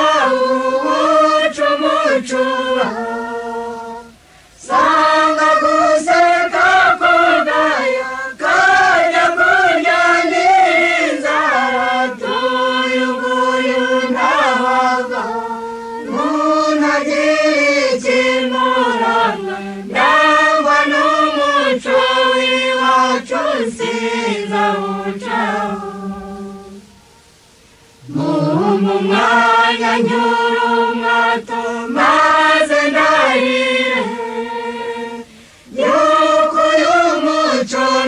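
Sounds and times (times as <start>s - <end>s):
choir singing long notes: 0.0s - 38.0s.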